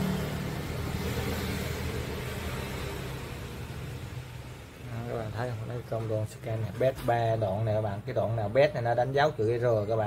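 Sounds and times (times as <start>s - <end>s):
power supply fan whirring: 0.0s - 10.0s.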